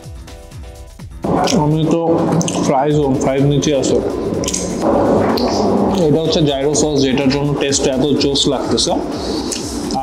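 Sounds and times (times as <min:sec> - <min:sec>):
quiet background music: 0:00.0 - 0:10.0
man talking loudly: 0:01.2 - 0:04.2, 0:05.9 - 0:09.2.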